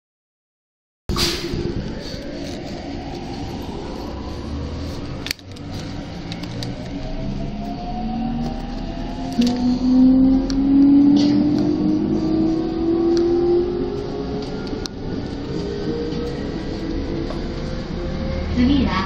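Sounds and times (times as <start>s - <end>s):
electric train motors whining: 1.5s - 18.9s.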